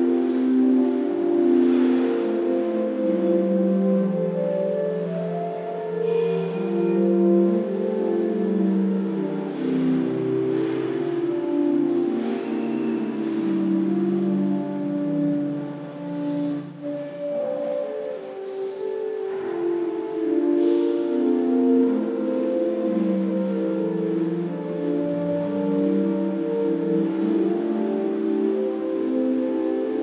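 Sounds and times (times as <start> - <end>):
pipe organ chords: 0.0 - 30.0.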